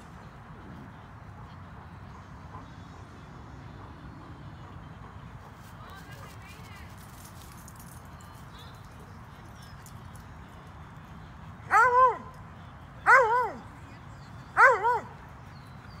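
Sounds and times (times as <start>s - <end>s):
dog yelping barks: 11.7s - 12.2s, 13.1s - 13.6s, 14.6s - 15.1s.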